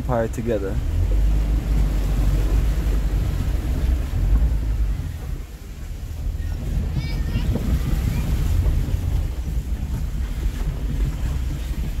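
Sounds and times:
road noise inside car: 0:00.0 - 0:12.0
wind buffeting microphone: 0:00.0 - 0:12.0.

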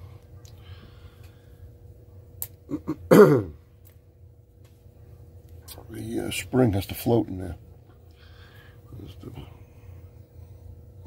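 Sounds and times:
man clearing his throat: 0:02.7 - 0:03.6.

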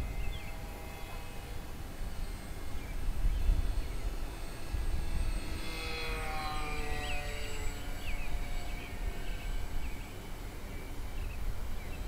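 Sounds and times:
electric motor and propeller whine: 0:00.0 - 0:12.0
wind rumble on microphone: 0:00.0 - 0:12.0.

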